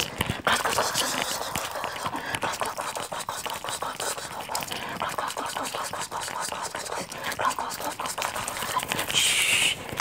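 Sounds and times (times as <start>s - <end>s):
breathy mouth sounds: 0.0s - 10.0s
hands clicking and rustling: 0.0s - 10.0s.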